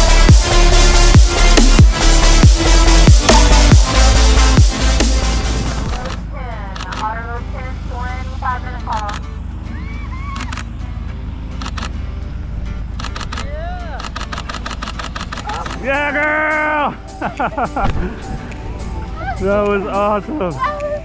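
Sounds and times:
background music: 0.0s - 21.0s
steady low rumble: 0.0s - 21.0s
sharp clicks: 6.8s - 7.1s, 8.9s - 9.3s, 10.4s - 10.7s, 11.6s - 12.0s, 12.9s - 15.8s
excited shouts and whoops: 9.7s - 10.6s.

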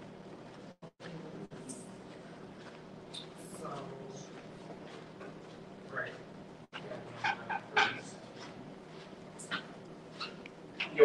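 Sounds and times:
eraser rubbing on paper: 8.1s - 10.9s.

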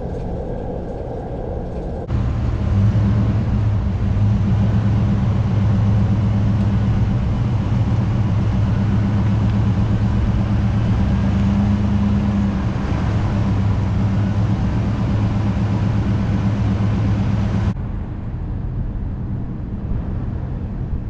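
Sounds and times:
vehicle tyre and road noise: 0.0s - 21.0s.

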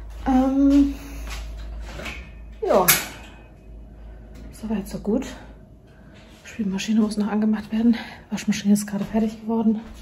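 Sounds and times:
low hum: 0.0s - 10.0s
woman speaking: 0.2s - 1.2s, 2.6s - 3.3s, 4.5s - 5.6s, 6.4s - 10.0s.

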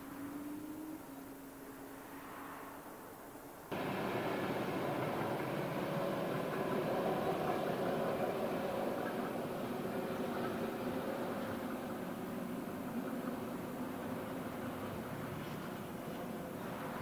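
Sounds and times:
distant electric train passing: 0.0s - 17.0s
wheels rumbling on rail: 0.0s - 17.0s.

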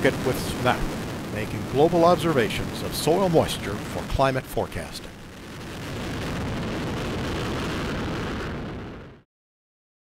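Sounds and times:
rocket engines roaring: 0.0s - 9.2s.

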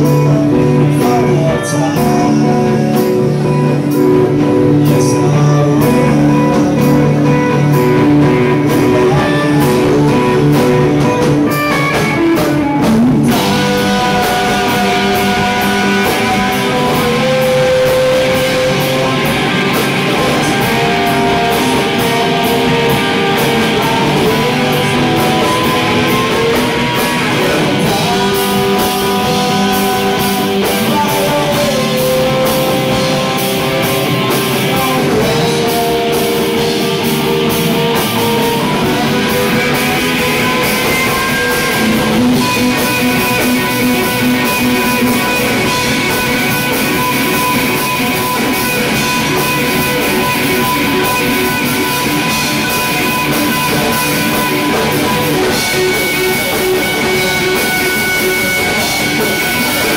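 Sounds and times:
drum kit beat: 0.0s - 59.9s
electric guitar: 0.0s - 59.9s
live rock band playing: 0.0s - 59.9s.

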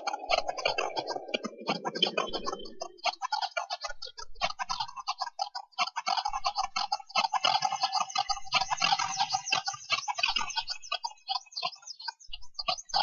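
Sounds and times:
crackling clicks and chirps: 0.0s - 13.0s.

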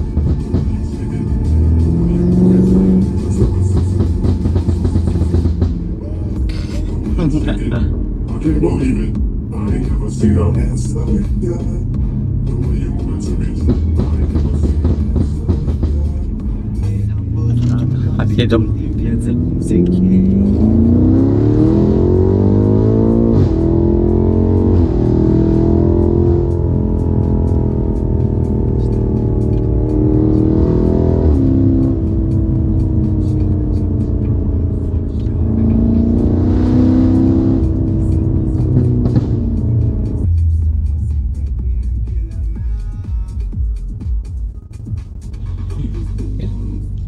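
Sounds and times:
car engine accelerating: 0.0s - 47.0s.

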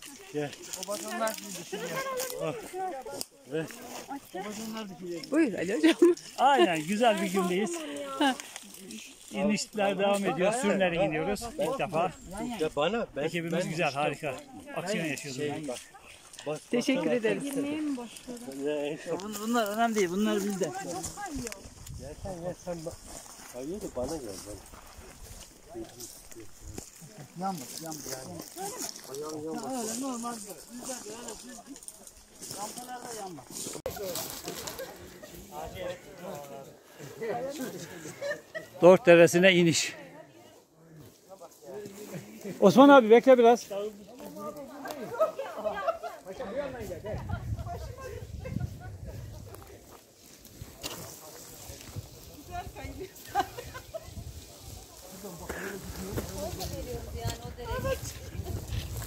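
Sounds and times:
distant voices of hikers: 0.0s - 38.9s, 43.8s - 59.0s
group of people talking: 0.0s - 59.0s
footsteps on dry forest slope: 15.2s - 38.2s, 48.8s - 59.0s.

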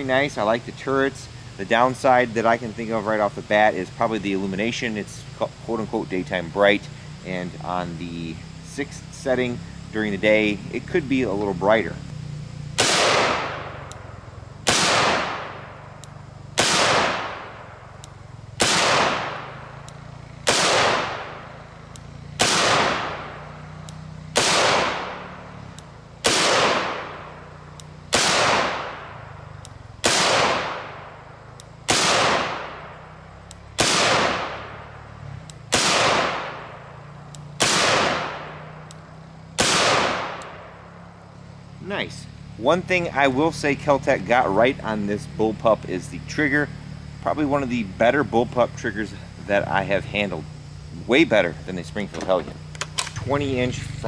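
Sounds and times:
rifle shots: 12.8s - 13.8s, 14.6s - 15.8s, 16.6s - 17.7s, 18.6s - 19.7s, 20.4s - 21.4s, 22.3s - 23.4s, 24.3s - 25.3s, 26.2s - 27.3s, 28.0s - 29.3s, 30.0s - 31.2s, 31.8s - 32.9s, 33.8s - 34.8s, 35.6s - 36.8s, 37.6s - 38.7s, 39.6s - 40.6s.

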